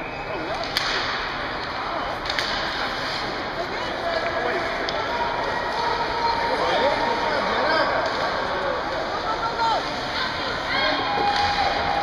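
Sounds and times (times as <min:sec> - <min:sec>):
ice arena hubbub: 0:00.0 - 0:12.0
hockey stick crack: 0:00.4 - 0:05.1.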